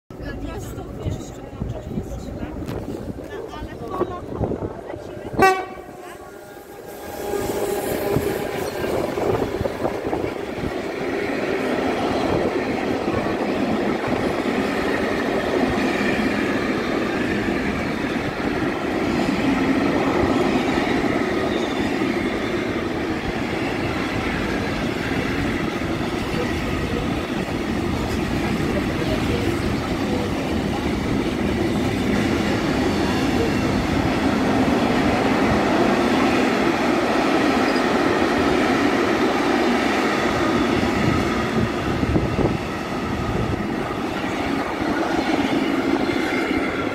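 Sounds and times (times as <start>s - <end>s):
train wheels rumbling on rails: 0.1s - 46.9s.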